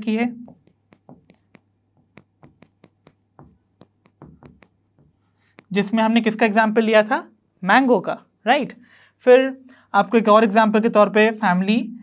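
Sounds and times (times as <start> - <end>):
marker writing on whiteboard: 0.0 - 6.4.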